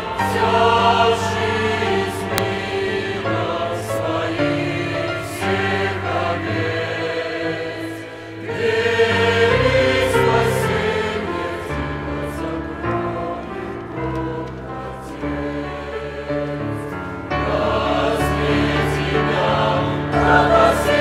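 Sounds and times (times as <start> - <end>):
mixed choir singing a hymn: 0.0 - 21.0.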